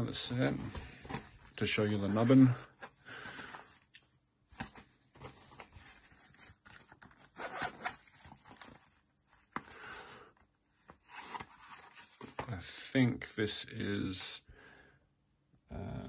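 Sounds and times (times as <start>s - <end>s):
zipper being pulled open: 7.3s - 8.0s.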